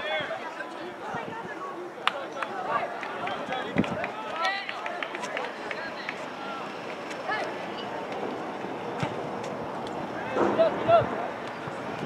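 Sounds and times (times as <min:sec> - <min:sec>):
people shouting and calling out: 0:00.0 - 0:08.1.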